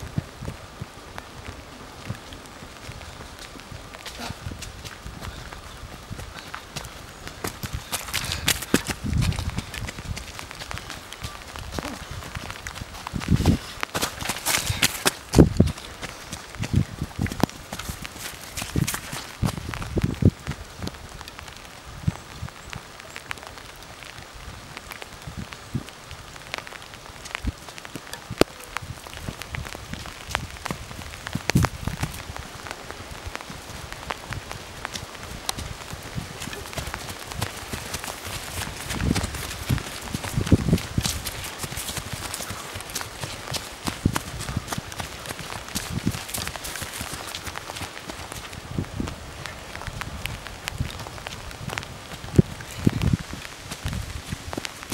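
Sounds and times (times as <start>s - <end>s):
footsteps pounding on muddy path: 0.0s - 22.2s, 23.7s - 54.9s
light rain patter: 0.0s - 54.9s.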